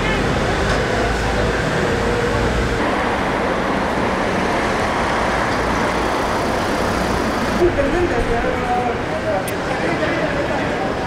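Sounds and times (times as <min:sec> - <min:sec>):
cars driving past: 0:00.0 - 0:11.0
road traffic: 0:00.0 - 0:11.0.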